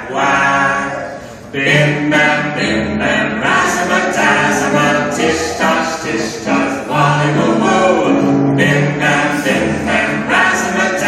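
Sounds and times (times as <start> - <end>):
group singing: 0.0 - 11.0.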